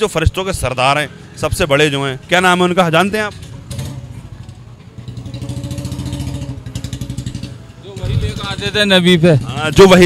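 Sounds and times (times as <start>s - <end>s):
motorcycle engine running: 3.0s - 10.0s.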